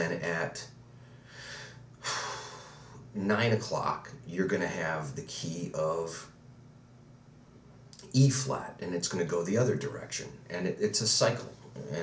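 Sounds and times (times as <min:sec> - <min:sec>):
man breathing: 0:00.9 - 0:03.1.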